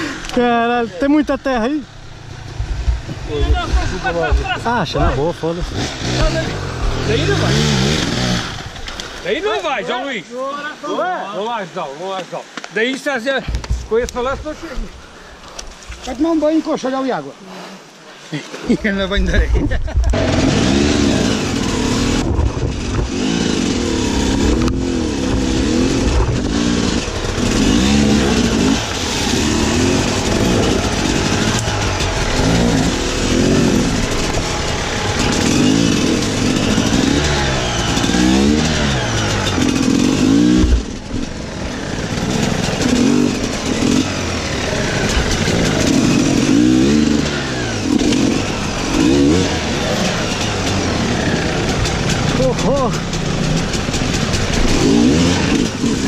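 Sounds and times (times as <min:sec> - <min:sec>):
motorcycle engine revving: 0:00.0 - 0:10.1, 0:19.3 - 0:56.0.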